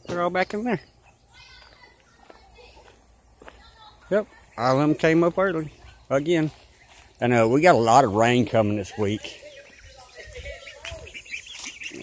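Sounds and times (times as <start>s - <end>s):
poultry chirping and peeping: 0.0s - 12.0s.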